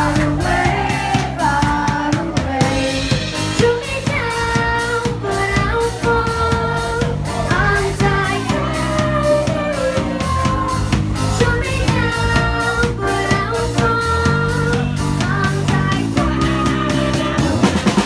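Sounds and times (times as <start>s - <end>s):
live pop band playing: 0.0s - 18.0s.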